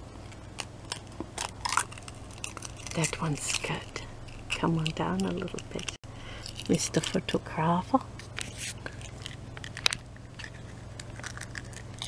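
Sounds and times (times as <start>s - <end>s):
eggshell cracking: 8.8s - 12.0s.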